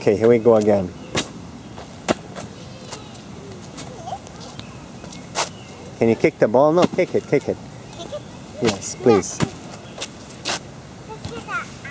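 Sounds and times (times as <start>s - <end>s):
low background noise: 0.0s - 11.9s.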